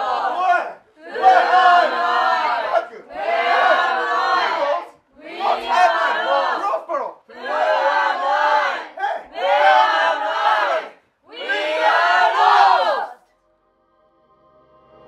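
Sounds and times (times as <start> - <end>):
group chanting in unison: 0.0 - 13.2.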